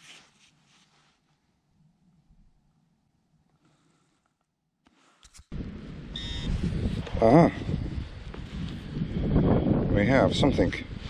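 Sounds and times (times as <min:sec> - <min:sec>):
wind buffeting microphone: 0:05.5 - 0:11.0
metal detector beep: 0:06.1 - 0:06.6.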